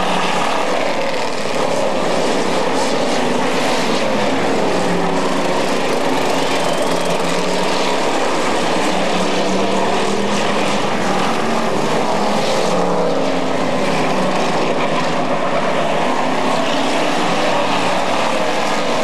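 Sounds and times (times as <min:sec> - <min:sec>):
race car engines roaring: 0:00.0 - 0:19.0.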